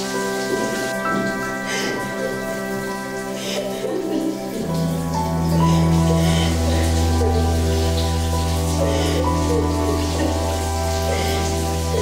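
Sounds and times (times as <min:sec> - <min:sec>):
music of slow held chords: 0:00.0 - 0:12.0
steady rain: 0:00.0 - 0:12.0.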